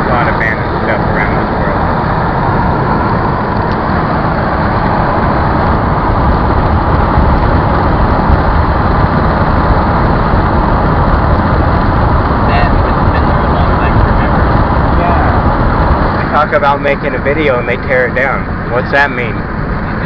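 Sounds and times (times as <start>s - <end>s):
road noise inside moving car: 0.0s - 20.0s
wind noise: 0.0s - 20.0s.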